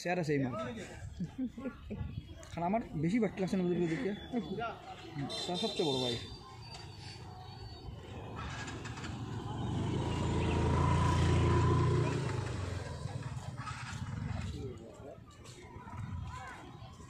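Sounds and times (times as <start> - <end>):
people's voices: 0.0 - 17.0
motorcycle engine passing: 7.7 - 15.0.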